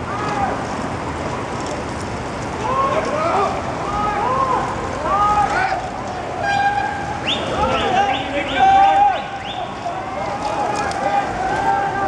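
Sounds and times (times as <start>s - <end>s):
cyclists whooping and shouting: 0.0s - 0.9s, 2.4s - 12.0s.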